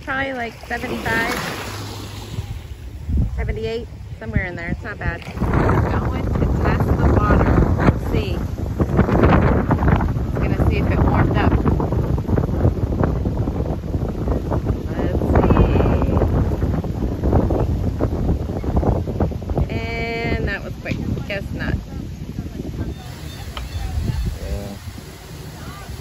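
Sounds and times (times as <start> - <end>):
wind buffeting microphone: 0.0 - 26.0
faint voices: 20.2 - 26.0.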